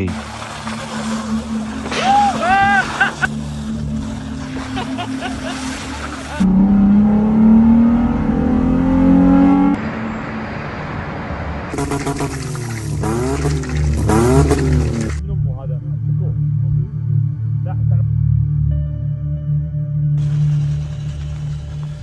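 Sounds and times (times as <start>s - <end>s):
tires driving through slush: 0.0s - 6.5s, 9.8s - 15.2s, 20.2s - 22.0s
vehicle engines running: 3.0s - 15.2s
pickup truck engine revving: 11.2s - 15.2s.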